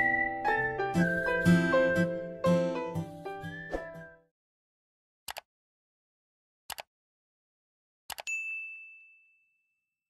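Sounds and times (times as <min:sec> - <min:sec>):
mouse clicks: 0:05.3 - 0:05.5, 0:06.7 - 0:06.9
bright bell ding: 0:08.3 - 0:09.8.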